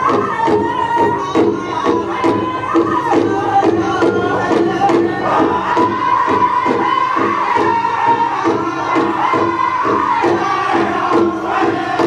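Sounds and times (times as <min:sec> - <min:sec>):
group singing in unison: 0:00.0 - 0:12.0
hand drum steady beat: 0:00.0 - 0:12.0.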